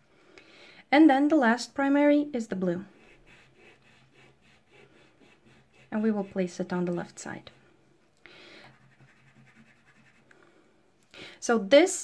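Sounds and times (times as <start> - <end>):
pastel scratching on paper: 2.9 - 7.7, 8.6 - 10.3.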